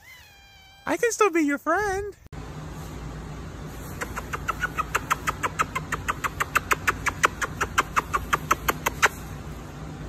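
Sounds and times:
kissing lip smacks: 0:04.0 - 0:09.2.

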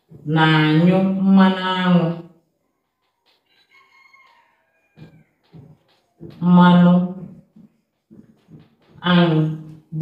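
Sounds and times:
marker squeaking on whiteboard: 0:01.9 - 0:09.6.

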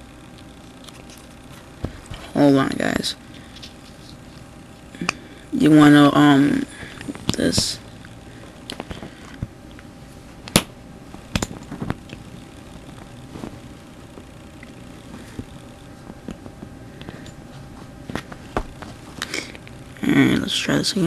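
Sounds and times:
steady low hiss: 0:00.0 - 0:21.0.

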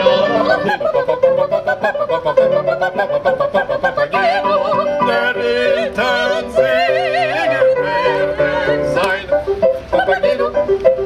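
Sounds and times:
operatic singing with vibrato: 0:00.0 - 0:11.0.

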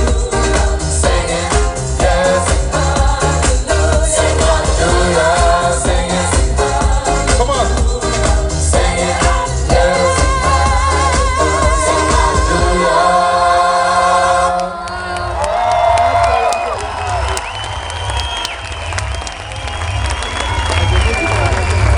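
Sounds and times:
dance music with heavy bass beat: 0:00.0 - 0:13.2
crowd cheering: 0:14.6 - 0:21.9.

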